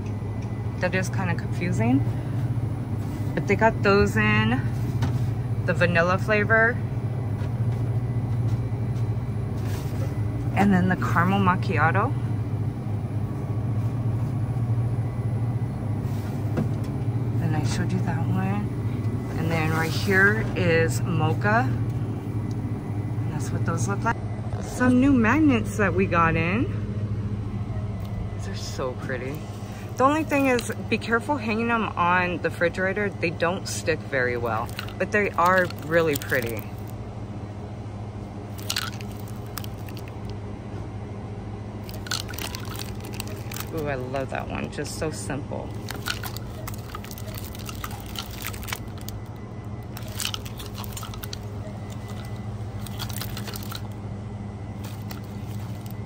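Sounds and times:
drinks cooler humming: 0:00.0 - 0:56.0
plastic packaging rustling: 0:30.1 - 0:30.8, 0:34.4 - 0:36.9, 0:38.5 - 0:40.4, 0:41.8 - 0:44.3, 0:45.7 - 0:54.0, 0:54.7 - 0:56.0
cans clicking: 0:38.6 - 0:40.3, 0:41.9 - 0:43.8, 0:45.8 - 0:49.2.

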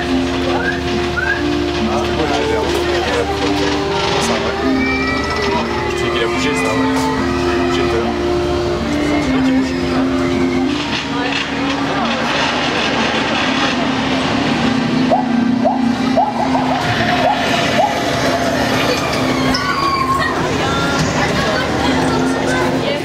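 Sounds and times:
held low musical notes: 0:00.0 - 0:23.0
steady boat rumble: 0:00.0 - 0:23.0.

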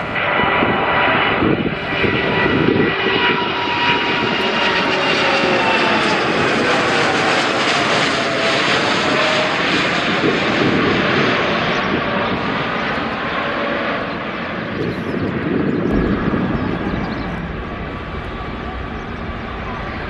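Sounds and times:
jet roar with whining tones: 0:00.0 - 0:20.0.

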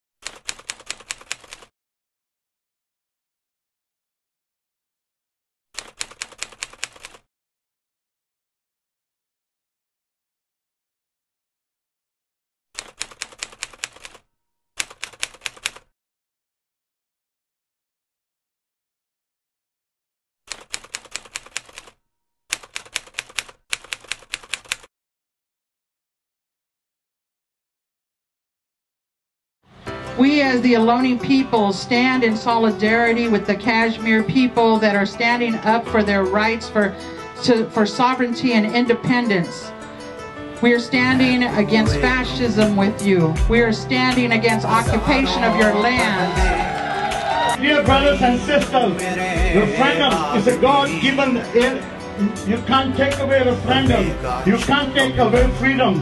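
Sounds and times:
typewriter key clacks: 0:00.2 - 0:01.7, 0:05.8 - 0:07.2, 0:12.8 - 0:14.2, 0:14.8 - 0:15.9, 0:20.5 - 0:24.9.

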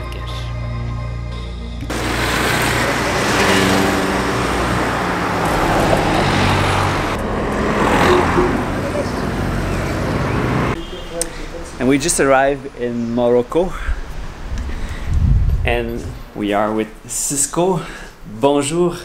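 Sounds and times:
cars driving past: 0:01.9 - 0:12.8.

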